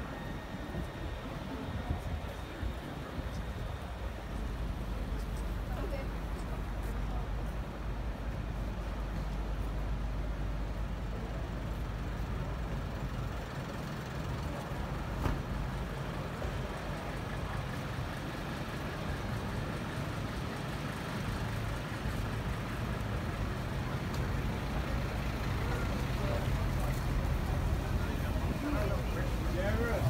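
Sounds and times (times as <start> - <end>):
vehicle engines rumbling: 0.0 - 30.0.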